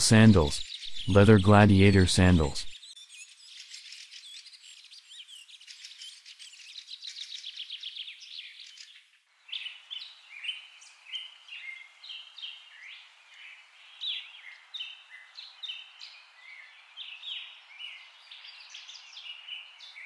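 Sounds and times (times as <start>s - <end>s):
birds chirping and singing: 0.1s - 9.7s.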